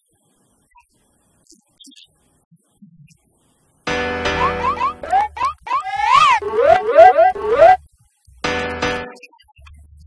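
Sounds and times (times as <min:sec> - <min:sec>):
comic music sting: 0:03.9 - 0:07.8
rising then falling swoop: 0:03.9 - 0:07.8
springy boing effects: 0:03.9 - 0:07.8.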